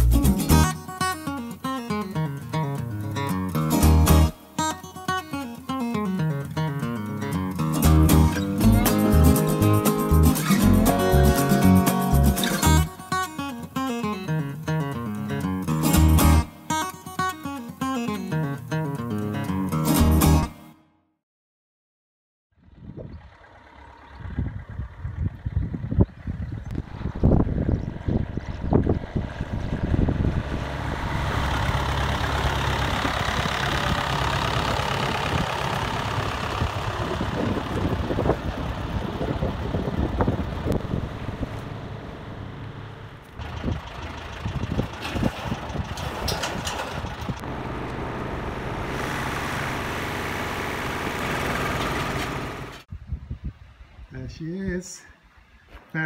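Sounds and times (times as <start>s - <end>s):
tractor engine running: 7.4s - 13.3s, 23.1s - 52.9s
metal clanks and knocks: 44.4s - 47.4s.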